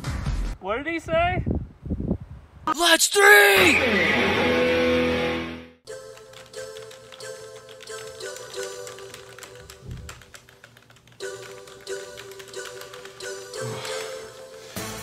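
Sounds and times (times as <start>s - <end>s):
background music with held tones: 5.9s - 10.1s, 11.2s - 15.0s
typing on computer keyboard: 5.9s - 14.4s.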